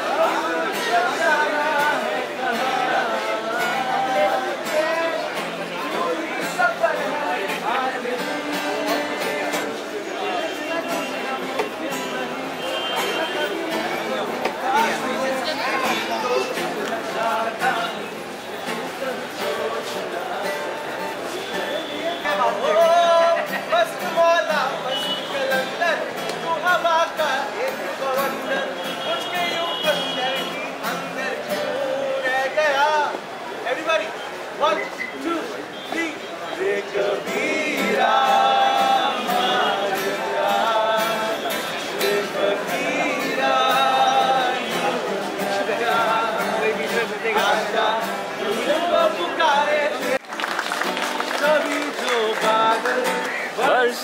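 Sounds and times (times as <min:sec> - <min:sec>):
man singing: 0:00.0 - 0:21.7, 0:22.3 - 0:33.3, 0:35.9 - 0:50.3, 0:51.2 - 0:54.0
acoustic guitars strummed: 0:00.0 - 0:33.3, 0:36.6 - 0:54.0
people's voices: 0:00.0 - 0:54.0.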